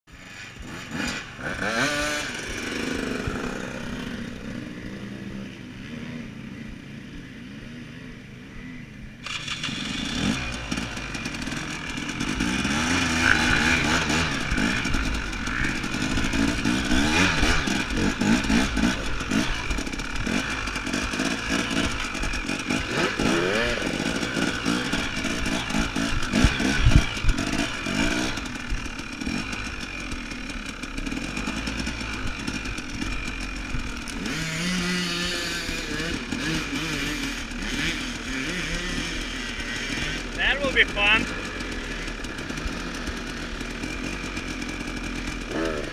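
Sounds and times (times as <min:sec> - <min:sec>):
dirt bike engine revving: 0:00.1 - 0:45.9.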